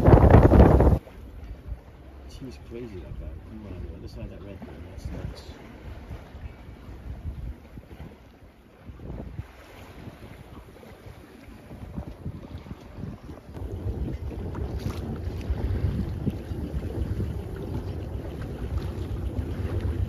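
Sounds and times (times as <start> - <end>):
wind buffeting microphone: 0.0 - 2.0, 2.9 - 20.0.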